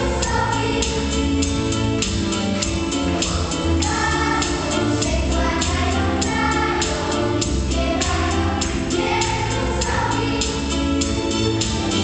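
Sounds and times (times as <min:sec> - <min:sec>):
children's choir singing: 0:00.0 - 0:01.5, 0:03.1 - 0:11.2
percussion beat and bass: 0:00.0 - 0:12.0.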